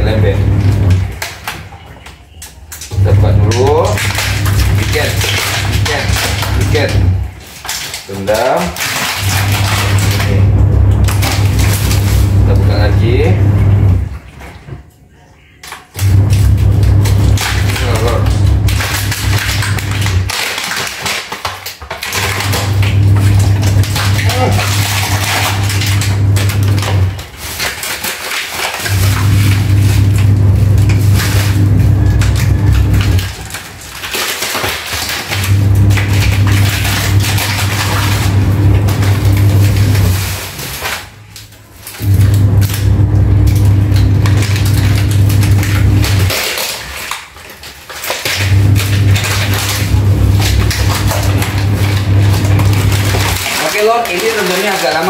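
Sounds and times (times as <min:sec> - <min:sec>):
washing machine churning: 0:00.0 - 0:55.0.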